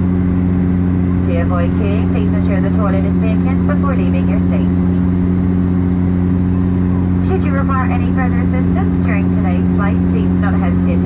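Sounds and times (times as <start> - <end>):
propeller plane cabin drone: 0.0 - 11.0.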